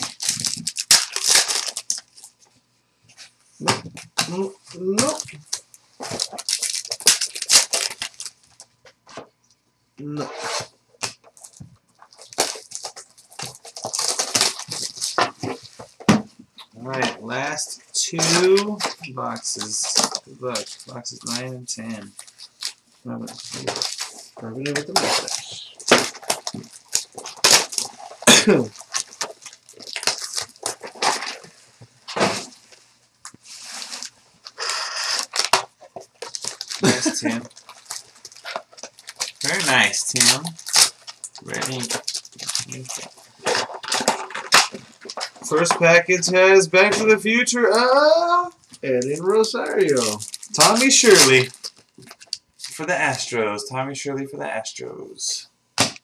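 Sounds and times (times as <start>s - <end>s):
packaging tearing: 0.0s - 2.3s, 5.0s - 8.6s, 10.4s - 15.7s, 18.1s - 32.7s, 33.5s - 45.8s, 48.9s - 53.2s
cards crinkling and rustling: 0.0s - 2.5s, 3.2s - 9.3s, 10.6s - 53.4s.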